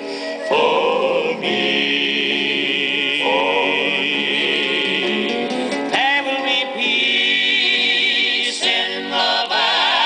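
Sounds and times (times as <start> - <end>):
male quartet singing in harmony: 0.4 - 10.0.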